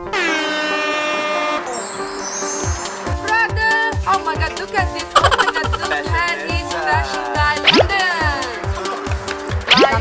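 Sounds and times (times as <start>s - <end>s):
horn sound effect: 0.0s - 3.0s
background music: 0.0s - 10.0s
high bright sound effect: 1.7s - 3.2s.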